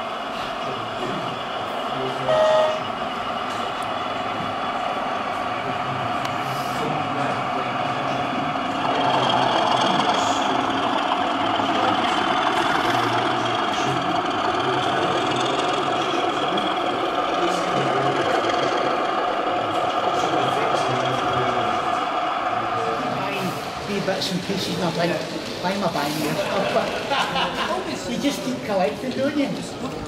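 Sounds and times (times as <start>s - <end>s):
model train humming: 0.0s - 30.0s
murmur of voices: 0.0s - 30.0s.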